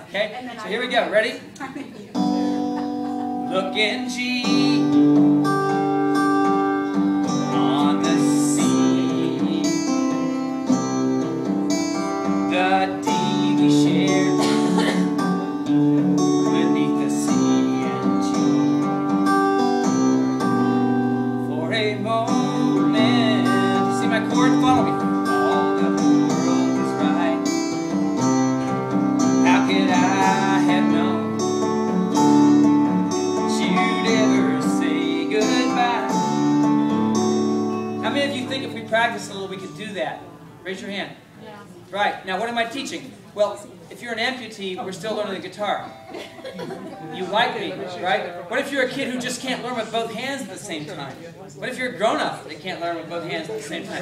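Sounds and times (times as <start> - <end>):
acoustic guitar strumming chords: 2.0 - 41.8, 44.7 - 50.2.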